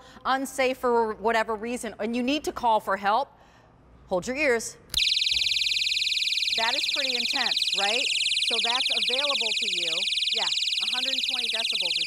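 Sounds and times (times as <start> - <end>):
shrill pulsing alarm siren: 5.0 - 12.0.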